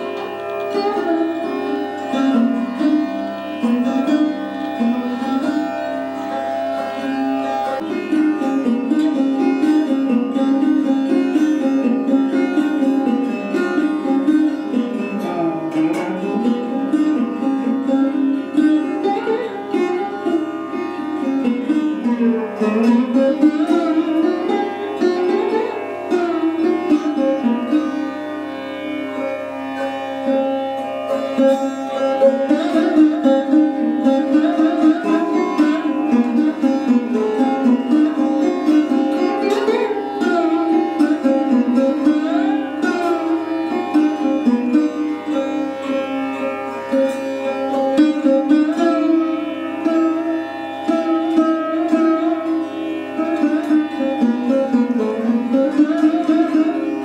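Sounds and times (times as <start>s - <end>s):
sarod plucked notes: 0.0s - 57.0s.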